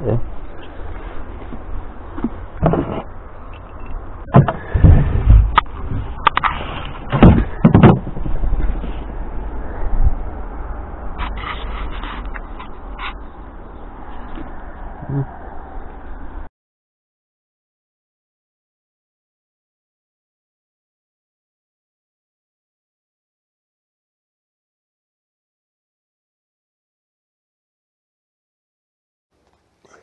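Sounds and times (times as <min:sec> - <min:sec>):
steady low rumble: 0:00.0 - 0:16.5
scrap knocking and clattering: 0:02.2 - 0:09.0.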